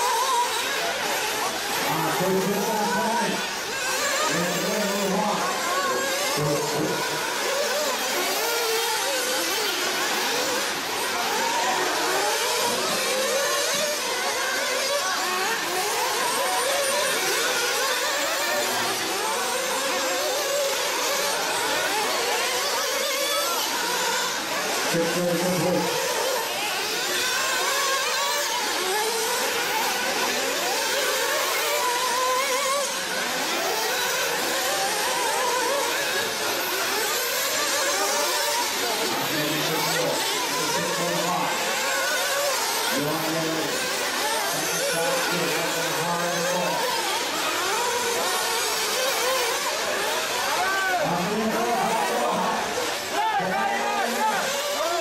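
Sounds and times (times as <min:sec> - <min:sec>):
small model car engines revving: 0:00.0 - 0:55.0.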